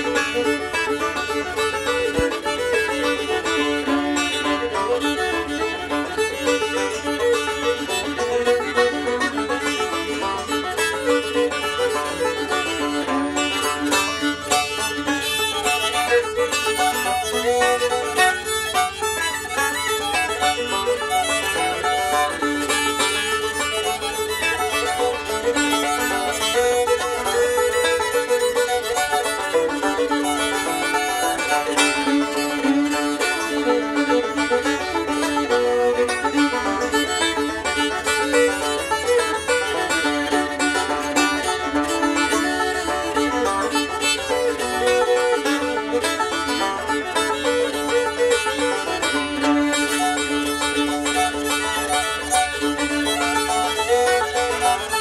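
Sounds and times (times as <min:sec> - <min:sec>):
bowed fiddle melody: 0:00.0 - 0:55.0
plucked banjo: 0:00.0 - 0:55.0.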